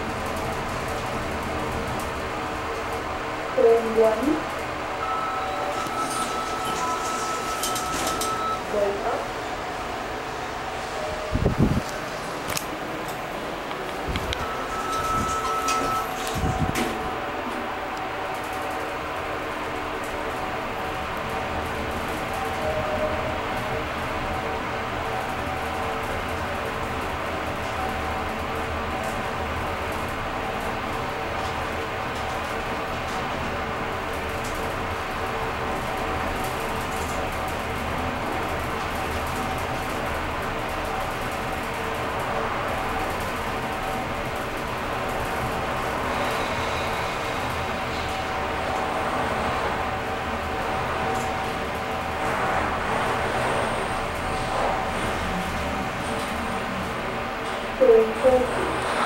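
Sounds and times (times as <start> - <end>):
elevator ride rush and hum: 0.0 - 59.0.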